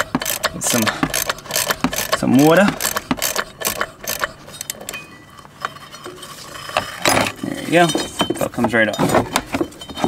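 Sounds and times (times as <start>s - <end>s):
clicks and knocks of drive belt: 0.0s - 4.8s.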